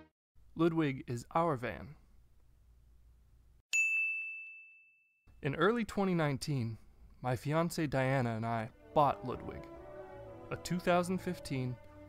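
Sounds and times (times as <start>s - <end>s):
bright bell-like ding: 3.7s - 5.1s.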